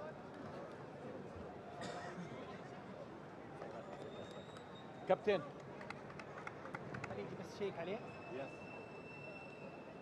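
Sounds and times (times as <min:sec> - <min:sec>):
stadium background noise: 0:00.0 - 0:10.0.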